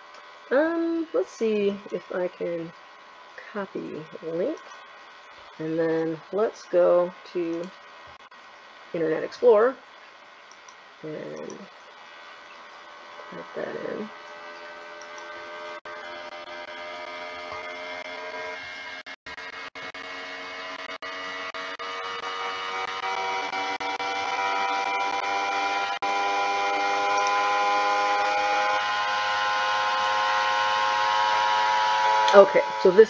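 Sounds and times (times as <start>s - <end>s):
steady machine hum: 0.0s - 33.0s.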